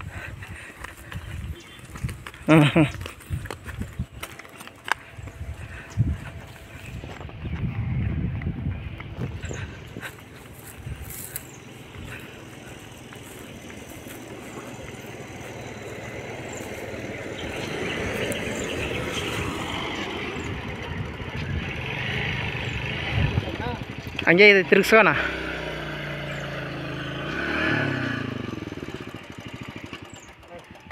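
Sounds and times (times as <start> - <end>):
motor vehicle running on road: 0.0 - 30.9.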